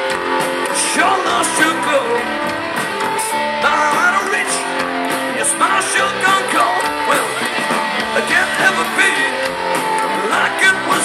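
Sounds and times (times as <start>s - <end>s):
drums: 0.0s - 11.0s
electric bass: 0.0s - 11.0s
electric guitar: 0.0s - 11.0s.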